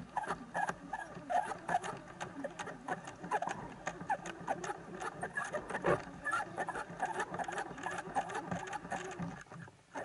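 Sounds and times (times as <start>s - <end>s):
underwater crackling clicks: 0.0s - 9.5s
water movement: 0.0s - 10.0s.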